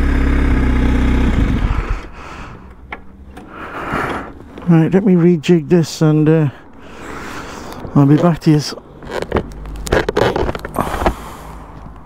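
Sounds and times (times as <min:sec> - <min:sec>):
motorcycle idling: 0:00.0 - 0:03.6
handling noise on camera microphone: 0:07.8 - 0:11.2.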